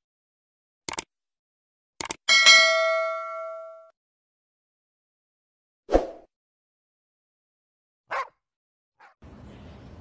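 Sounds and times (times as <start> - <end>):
notification bell ding: 2.3 - 3.9.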